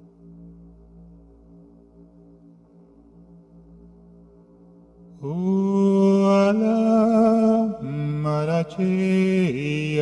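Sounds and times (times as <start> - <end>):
faint low drone: 0.0 - 10.0.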